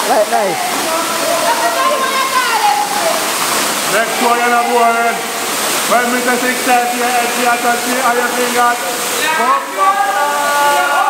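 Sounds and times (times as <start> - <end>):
voices: 0.0 - 11.0
waterfall rushing over rocks: 0.0 - 11.0.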